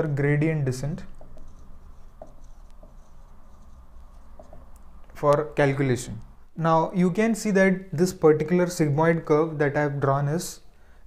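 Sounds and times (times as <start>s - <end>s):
marker writing on whiteboard: 0.7s - 5.5s.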